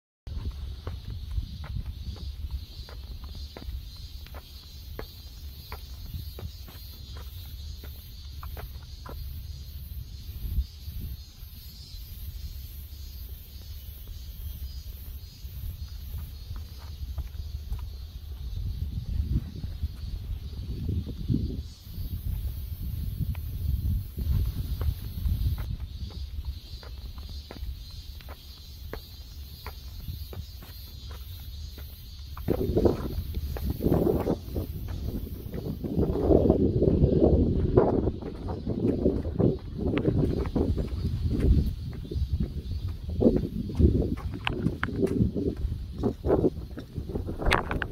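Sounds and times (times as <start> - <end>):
cicadas buzzing: 0.3 - 47.9
footsteps on paved path: 0.3 - 47.9
low rumble on microphone: 32.4 - 47.9.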